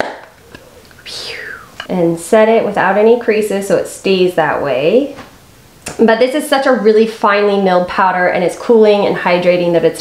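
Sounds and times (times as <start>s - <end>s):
breathy whoosh falling in pitch: 0.6s - 1.9s
person talking: 0.6s - 5.2s.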